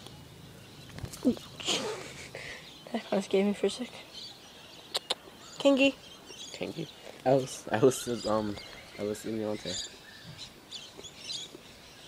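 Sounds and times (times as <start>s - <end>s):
faint bird chirps: 0.0s - 12.0s.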